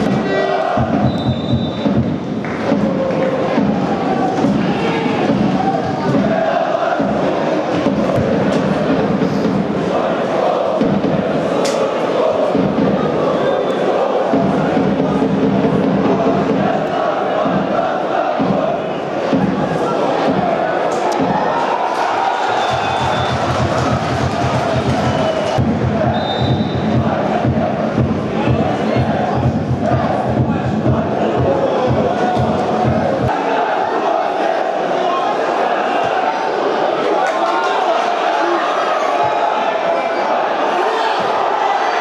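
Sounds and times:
steady low drumbeat: 0:00.0 - 0:10.0, 0:10.7 - 0:11.5, 0:12.4 - 0:13.3, 0:14.2 - 0:20.6, 0:22.7 - 0:33.4
stadium crowd chanting: 0:00.0 - 0:42.0.

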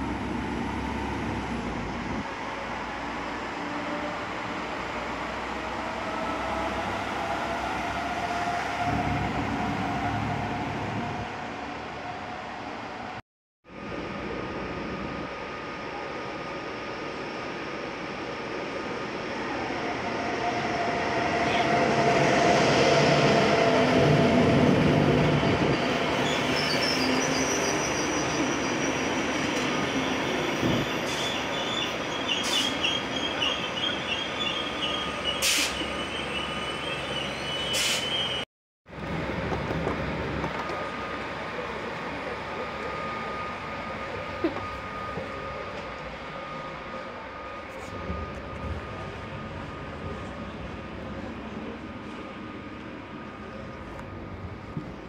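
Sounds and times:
electric locomotive humming: 0:00.0 - 0:55.0
train rumble inside coach: 0:18.0 - 0:27.4, 0:38.9 - 0:55.0
train wheels squealing: 0:20.4 - 0:38.4.

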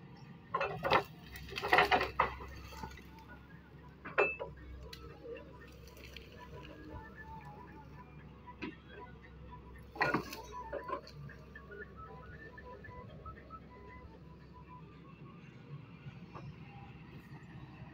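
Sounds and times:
diesel engine running: 0:00.0 - 0:17.9.

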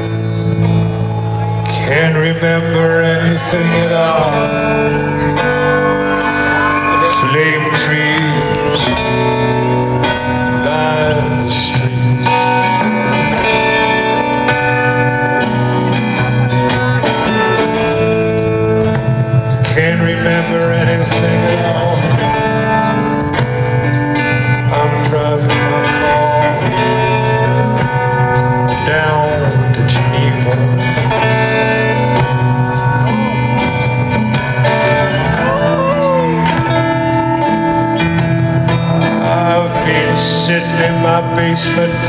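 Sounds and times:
live rock band playing blues: 0:00.0 - 0:42.0.

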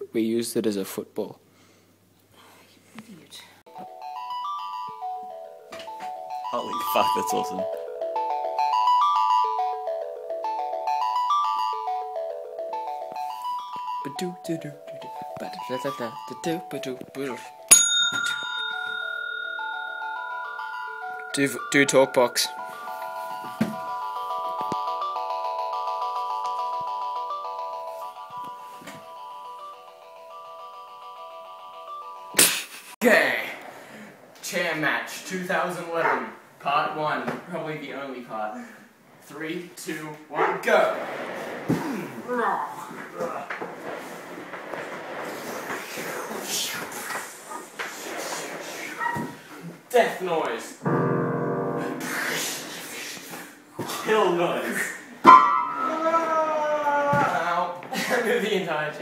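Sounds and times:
synthesized notes: 0:03.7 - 0:32.4, 0:50.8 - 0:53.4
steady high tone: 0:03.8 - 0:32.3, 0:50.8 - 0:53.4
bodies and chairs knocking: 0:23.4 - 0:24.0.

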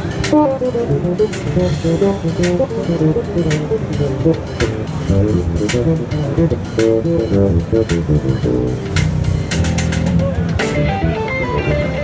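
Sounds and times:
fretless electric bass run: 0:00.0 - 0:12.0.

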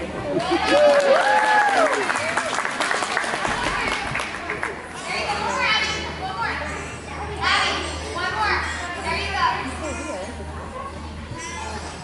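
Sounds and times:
steady low hum: 0:01.7 - 0:12.0
children chattering and calling: 0:03.5 - 0:12.0.

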